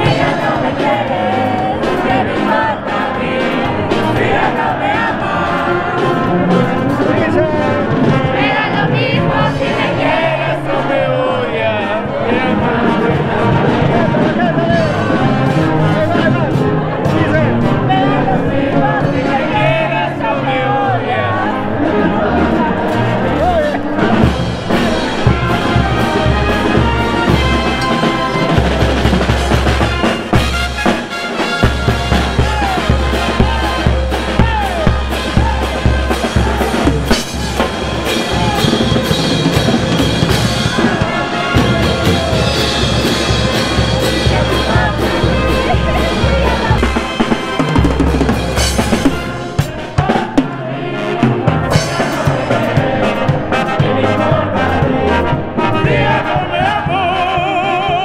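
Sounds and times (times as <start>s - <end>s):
brass band playing: 0.0s - 58.0s
trumpets and saxophones: 0.0s - 58.0s
drum kit and bass drum beat: 23.4s - 50.6s, 51.2s - 58.0s
sousaphone bass line: 31.8s - 49.4s.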